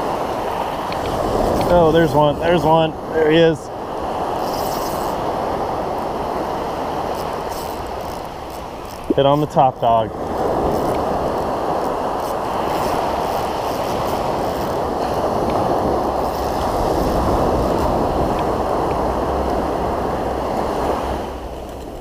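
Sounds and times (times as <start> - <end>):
ocean surf washing up: 0.0 - 22.0
wind on microphone: 0.0 - 22.0.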